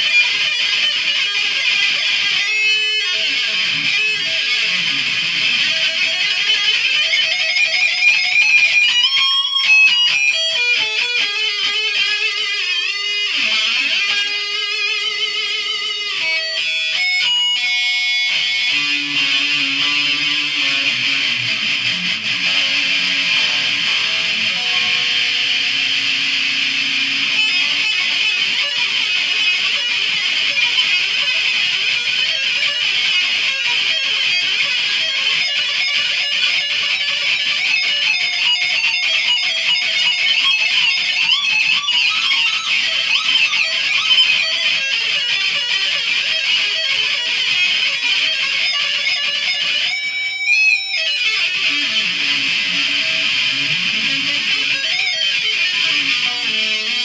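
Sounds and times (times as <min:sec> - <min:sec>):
electric guitar arpeggios: 0:00.0 - 0:57.0
guitar falling pitch swoop: 0:18.7 - 0:28.0.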